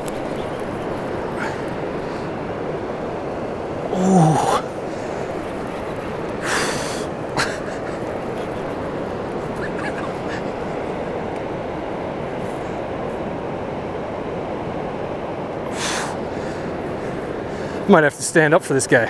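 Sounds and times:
fast-flowing river rushing: 0.0s - 19.0s.

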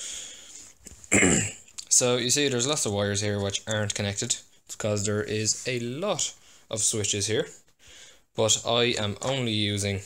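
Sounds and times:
man coughing and clearing throat: 1.0s - 1.7s.

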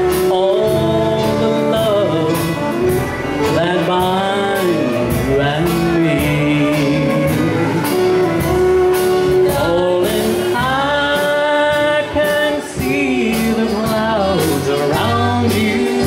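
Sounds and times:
guitar: 0.0s - 16.0s
person singing: 0.0s - 16.0s
steady drum beat: 0.0s - 16.0s.

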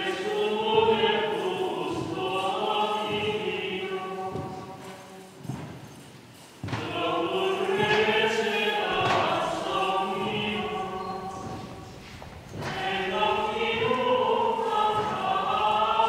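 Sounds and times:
choir singing a hymn: 0.0s - 6.0s, 6.6s - 16.0s
dull thuds: 8.8s - 16.0s.

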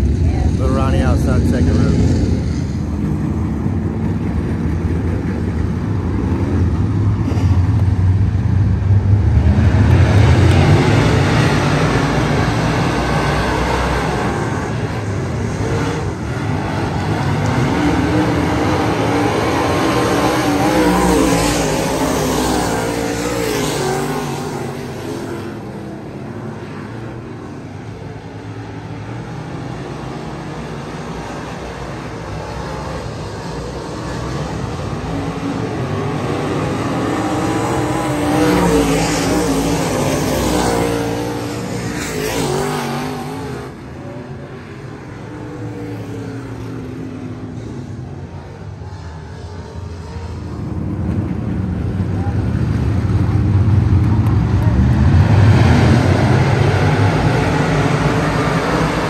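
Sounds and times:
race car engines: 0.0s - 59.0s.

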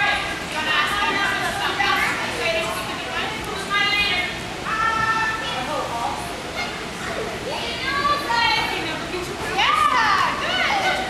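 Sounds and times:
young children chattering: 0.8s - 3.6s, 6.4s - 11.0s.

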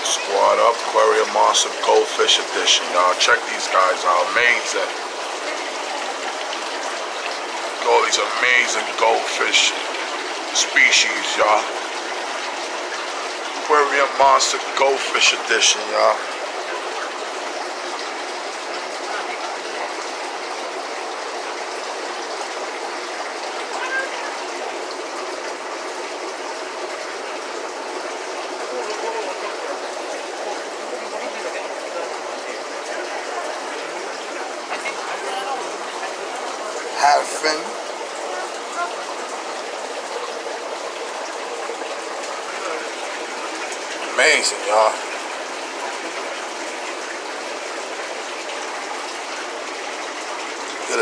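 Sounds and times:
aquarium water bubbling: 0.0s - 51.0s.

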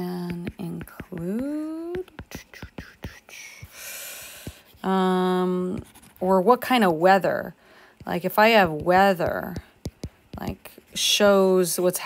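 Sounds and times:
stylus tapping on glass screen: 0.1s - 4.9s, 8.0s - 10.7s
soft whispered breath: 2.5s - 4.8s.

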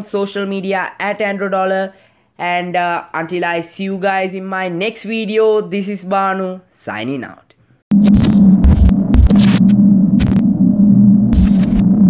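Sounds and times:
static crackles: 7.9s - 10.5s, 11.3s - 12.0s
electronic buzzing hum: 7.9s - 12.0s.

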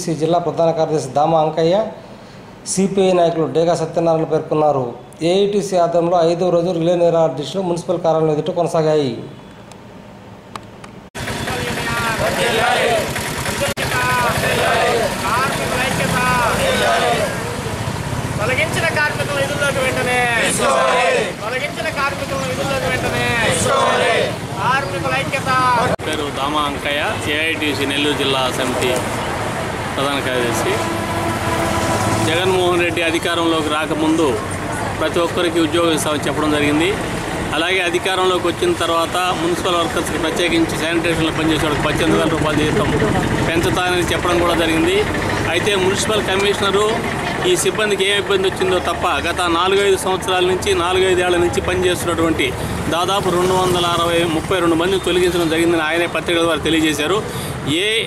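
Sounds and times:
vehicle engine running loudly: 11.2s - 20.9s, 26.1s - 55.7s
people's voices: 11.4s - 31.0s
man talking: 29.9s - 30.9s, 32.2s - 58.0s.

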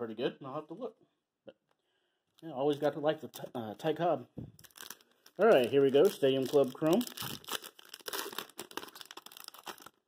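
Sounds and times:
foil wrapper crinkling and tearing: 4.6s - 10.0s.

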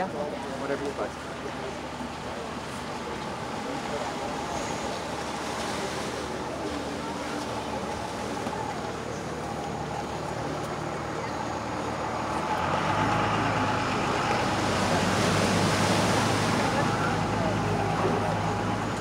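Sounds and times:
engine humming: 0.0s - 19.0s
faint murmur of voices: 0.0s - 19.0s.

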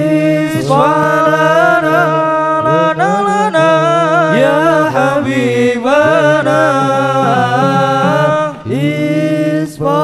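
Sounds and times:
men chanting devotional song: 0.0s - 10.0s.

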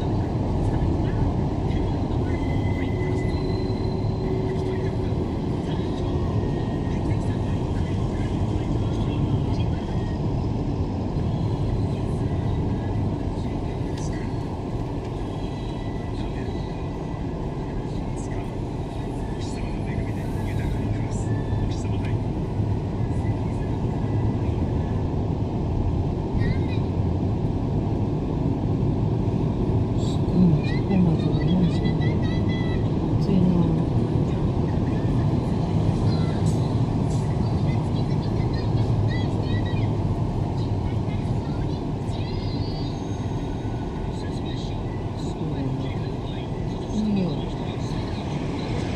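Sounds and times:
road and engine rumble in car: 0.0s - 48.9s.

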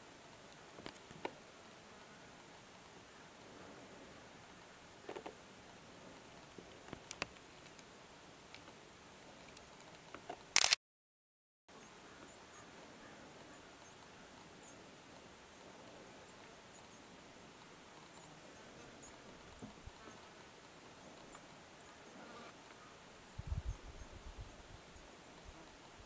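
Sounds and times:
faint meadow ambience: 0.0s - 10.8s, 11.7s - 26.0s.

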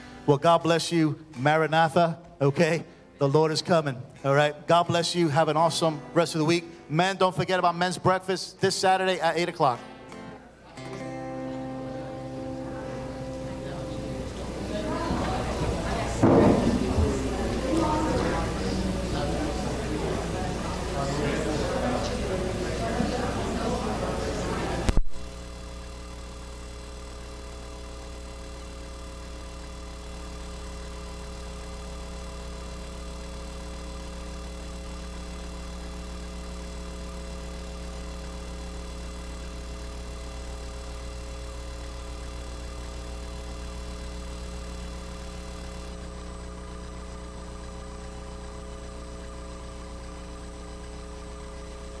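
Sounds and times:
steady electrical hum: 0.0s - 52.0s
high-pitched buzz: 9.8s - 52.0s.

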